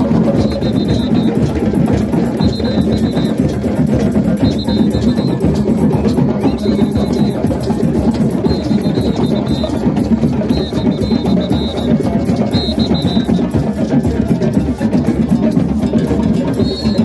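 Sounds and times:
hand drums playing: 0.0 - 17.0.

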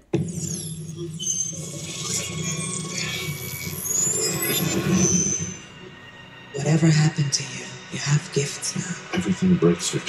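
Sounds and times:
high tone gliding upward: 0.2 - 7.1.

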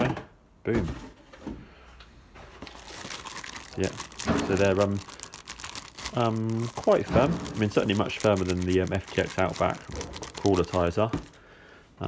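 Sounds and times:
plastic bags rustling and crinkling: 2.4 - 11.4.

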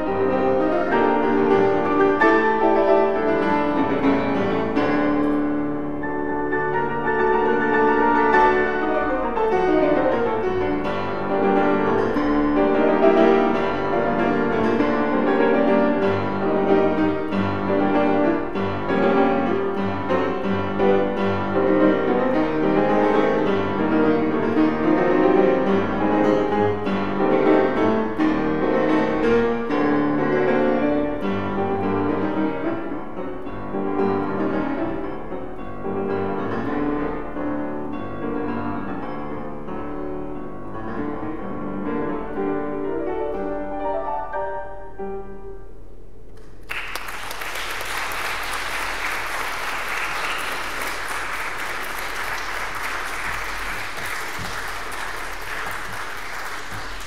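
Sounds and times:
classical piano piece: 0.0 - 46.4, 47.1 - 57.0.

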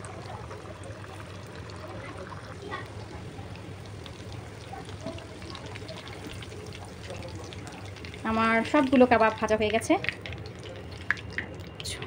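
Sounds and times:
frying oil sizzling and popping: 0.0 - 12.0.

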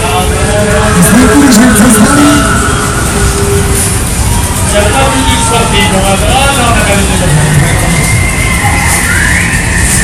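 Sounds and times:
ghost train ride rumbling: 0.0 - 10.0.

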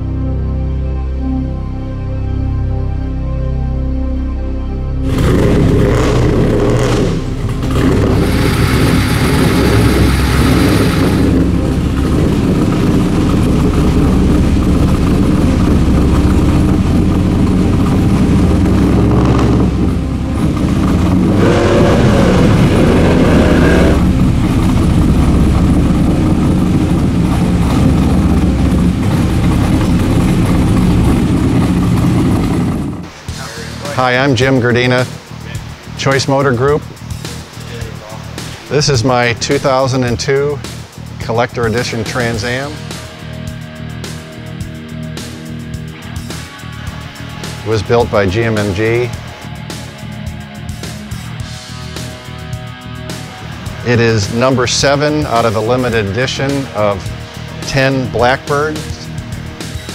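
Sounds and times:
car engine revving: 5.0 - 59.9.

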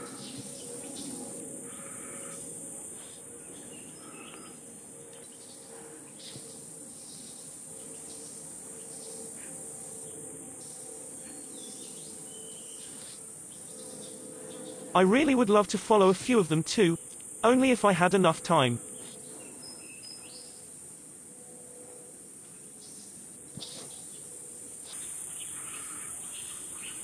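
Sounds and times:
insect chorus drone: 0.0 - 27.0.

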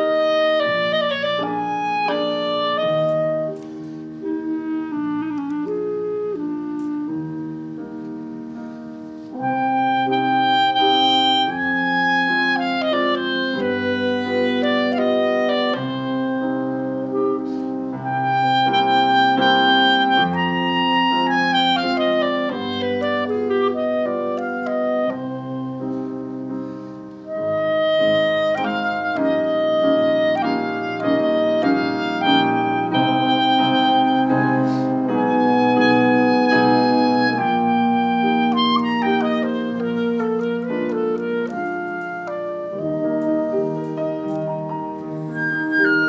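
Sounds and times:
clarinet: 0.0 - 46.0
french horn: 0.0 - 46.0
piano accompaniment: 0.0 - 46.0.

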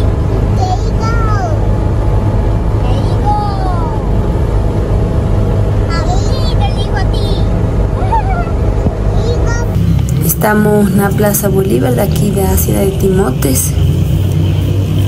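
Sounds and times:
car engine and road drone: 0.0 - 15.0.

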